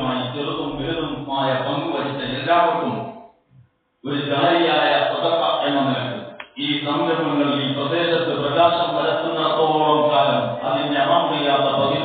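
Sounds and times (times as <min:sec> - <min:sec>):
man preaching: 0:00.0 - 0:03.0, 0:04.0 - 0:12.0.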